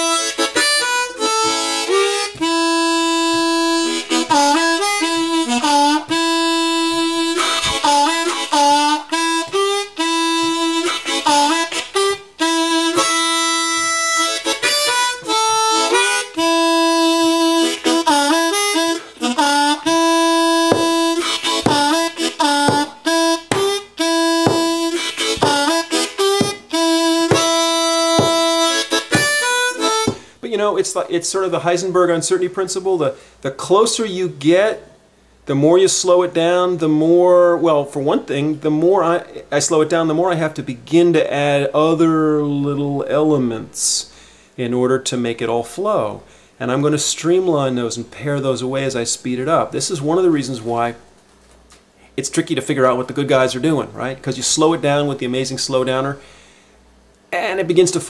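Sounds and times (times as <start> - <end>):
blues harmonica playing: 0.0 - 30.6.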